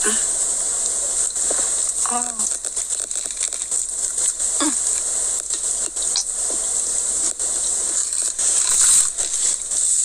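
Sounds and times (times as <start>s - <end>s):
faint voice: 0.0s - 0.3s, 4.6s - 4.9s
high-pitched background hiss: 0.0s - 10.0s.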